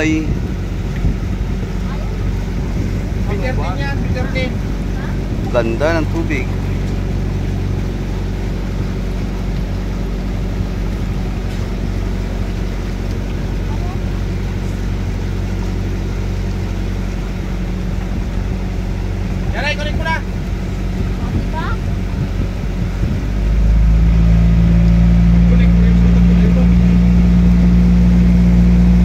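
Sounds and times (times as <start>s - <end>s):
boat engine droning: 0.0s - 29.0s
water washing along hull: 0.0s - 29.0s.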